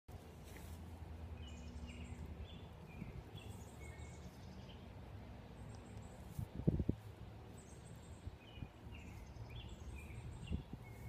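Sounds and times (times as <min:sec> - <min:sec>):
small birds chirping: 0:00.3 - 0:11.0.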